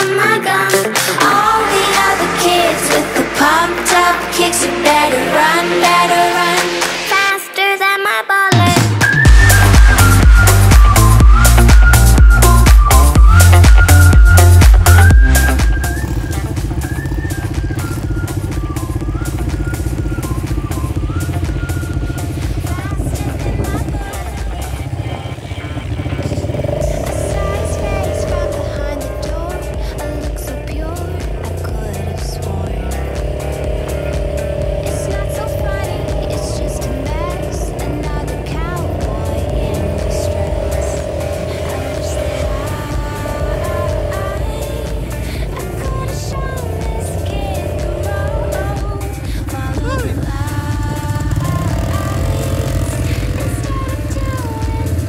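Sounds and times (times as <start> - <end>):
quad bike engine running: 0.0 - 7.2, 8.5 - 55.0.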